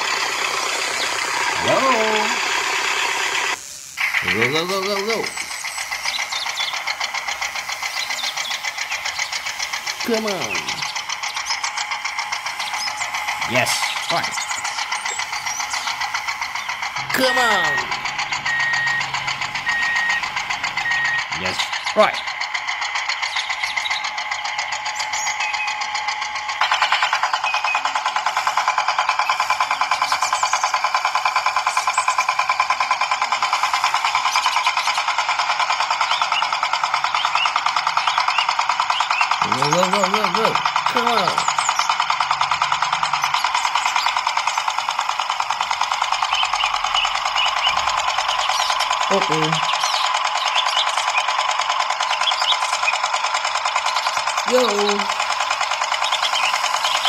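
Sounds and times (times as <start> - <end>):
small electric motor whining: 0.0 - 57.0
short voice: 17.0 - 18.0.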